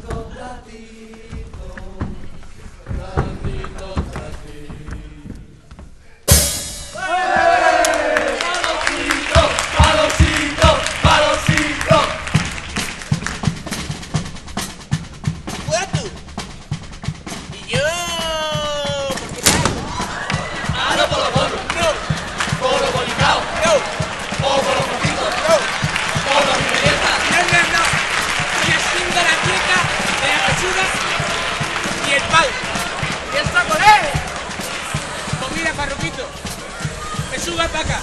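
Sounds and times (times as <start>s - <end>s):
bass drum and snare rhythm: 0.0s - 38.0s
sharp drum hit: 6.3s - 7.6s, 19.3s - 20.8s
voices shouting and chanting: 6.9s - 12.2s, 17.6s - 38.0s.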